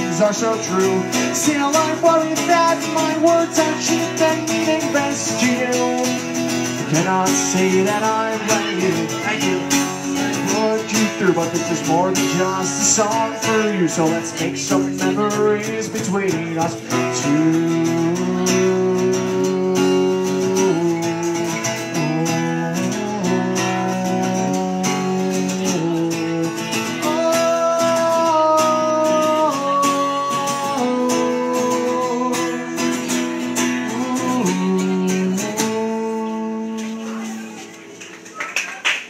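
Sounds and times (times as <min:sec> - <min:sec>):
acoustic guitar chords: 0:00.0 - 0:38.4.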